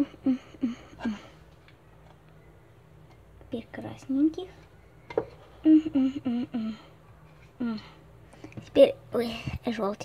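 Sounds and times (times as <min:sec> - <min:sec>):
girl murmuring: 0:00.0 - 0:01.4, 0:05.6 - 0:07.0.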